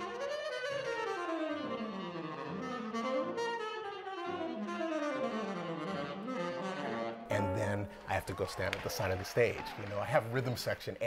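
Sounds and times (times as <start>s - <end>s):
tenor saxophone jazz solo: 0.0s - 8.1s.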